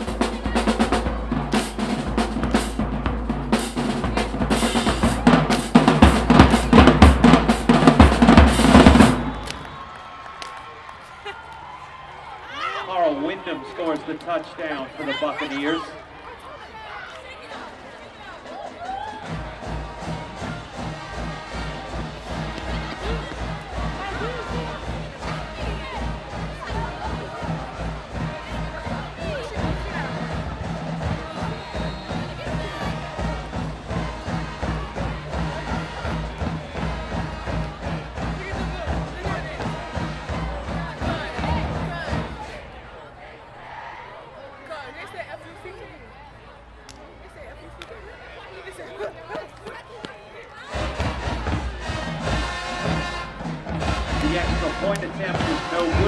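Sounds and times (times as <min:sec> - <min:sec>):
marching band playing: 0:00.0 - 0:10.0, 0:18.2 - 0:42.7, 0:50.6 - 0:56.0.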